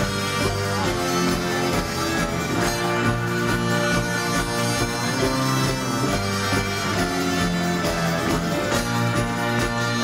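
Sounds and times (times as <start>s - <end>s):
banjo: 0.0s - 10.0s
upright bass: 0.0s - 10.0s.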